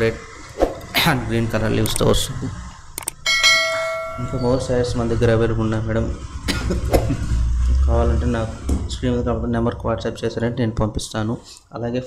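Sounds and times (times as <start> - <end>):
bright bell ding: 3.2 - 4.9.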